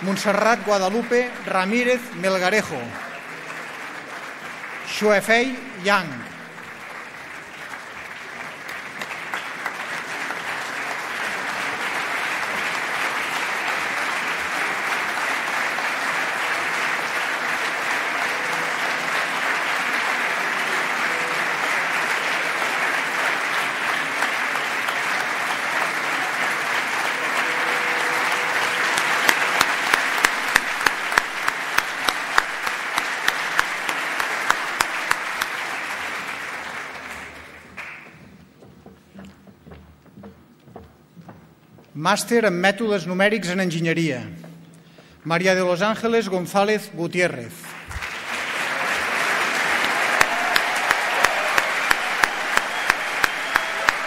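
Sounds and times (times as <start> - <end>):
audience applause in a hall: 0.0 - 39.3, 47.2 - 54.0
loud single claps: 27.6 - 35.6, 49.6 - 54.0.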